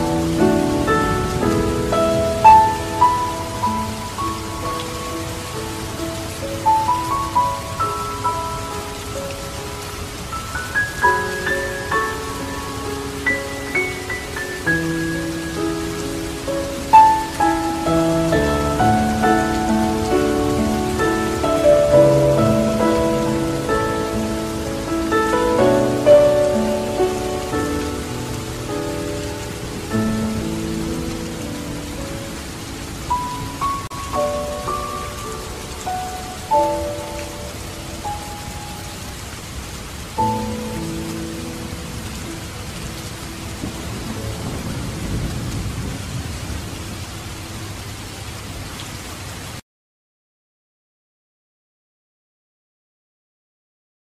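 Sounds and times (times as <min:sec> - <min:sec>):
gentle solo instrumental music: 0:00.0 - 0:45.2
steady rain: 0:00.0 - 0:49.6.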